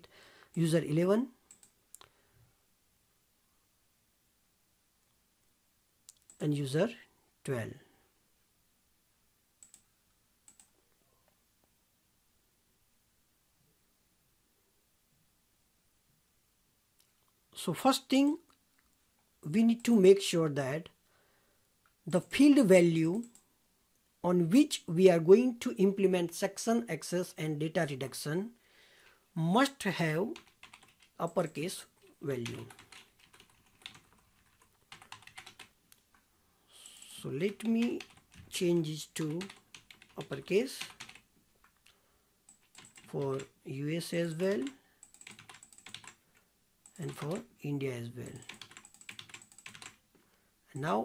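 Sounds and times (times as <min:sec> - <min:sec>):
faint keyboard typing: 0:00.0 - 0:02.1, 0:06.0 - 0:06.6, 0:09.6 - 0:11.4, 0:19.6 - 0:20.0, 0:22.2 - 0:23.5, 0:30.0 - 0:36.2, 0:37.0 - 0:47.5, 0:48.2 - 0:50.2.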